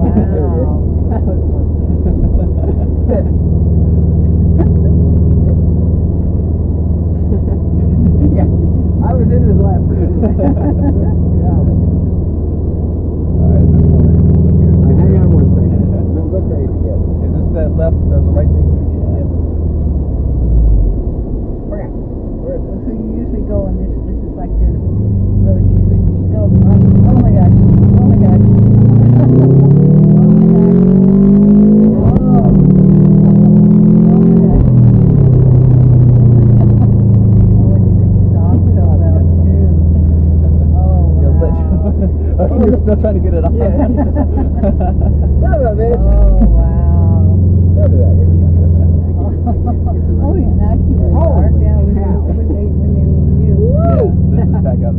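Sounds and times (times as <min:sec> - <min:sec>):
car engine accelerating: 0:00.0 - 0:54.9.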